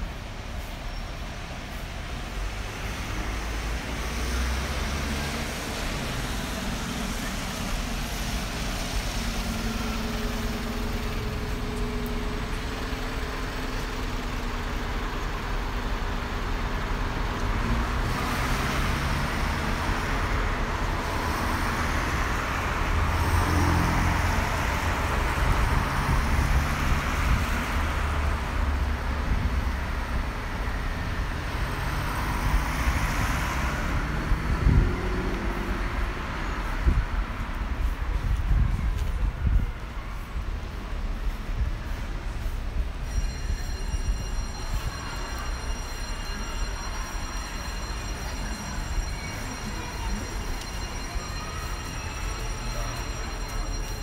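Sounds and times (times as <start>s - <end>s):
engine hum and tyre noise: 0.0s - 54.0s
vehicles passing: 0.0s - 54.0s.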